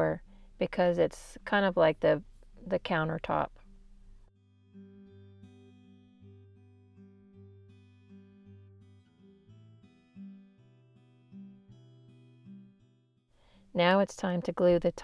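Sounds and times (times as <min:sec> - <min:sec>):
acoustic guitar picking notes: 0:03.4 - 0:13.2.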